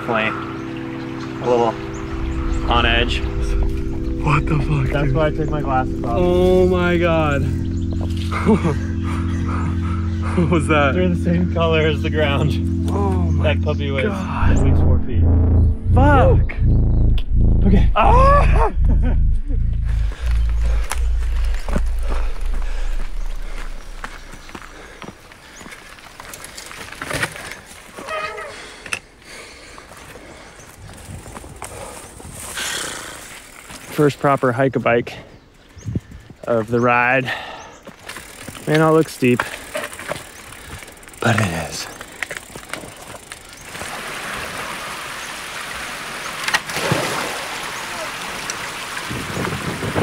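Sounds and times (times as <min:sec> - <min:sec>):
background music low notes: 0:00.0 - 0:24.8
rider breathing hard: 0:24.4 - 0:26.1, 0:28.4 - 0:33.5, 0:37.2 - 0:38.4, 0:39.4 - 0:41.2.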